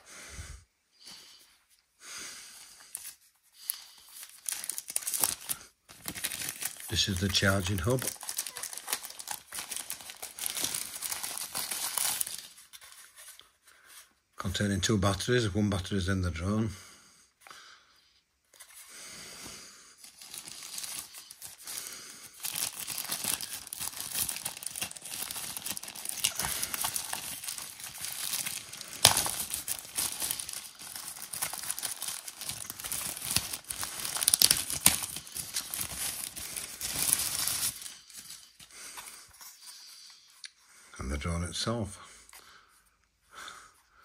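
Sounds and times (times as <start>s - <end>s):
plastic wrapping crinkling: 2.9s - 14.1s, 20.0s - 39.8s.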